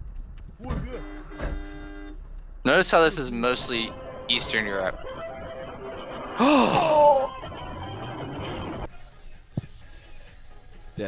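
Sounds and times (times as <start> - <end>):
person's voice: 2.7 - 4.9, 6.4 - 7.3.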